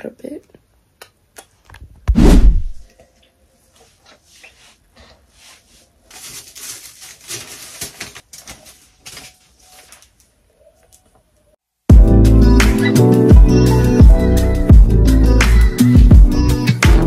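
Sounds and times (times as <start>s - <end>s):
loud low thump: 2.1s - 2.8s
rustling handling noise: 3.7s - 11.1s.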